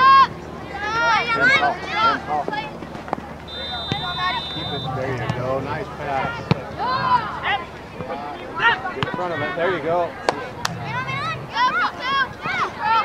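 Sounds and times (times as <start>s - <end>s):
whistle blast: 3.5s - 5.0s
people calling out: 3.5s - 5.2s.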